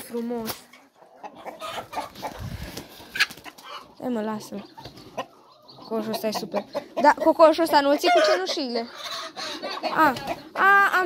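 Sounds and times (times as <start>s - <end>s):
chickens clucking: 0.0s - 11.0s.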